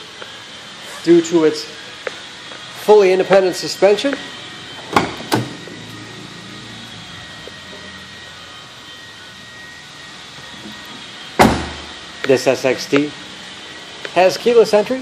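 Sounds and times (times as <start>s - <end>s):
faint high whine: 0.0s - 15.0s
steady room hum: 0.0s - 15.0s.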